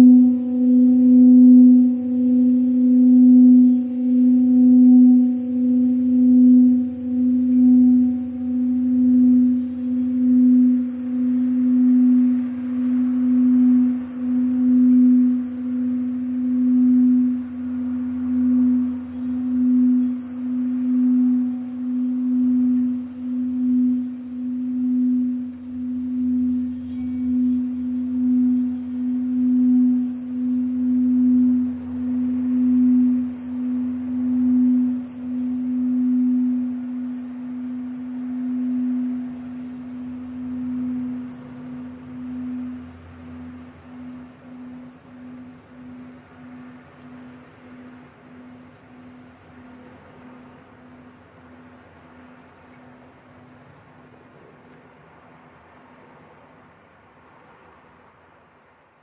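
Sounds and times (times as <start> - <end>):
singing bowl ringing: 0.0 - 51.8
crickets singing: 0.0 - 59.0.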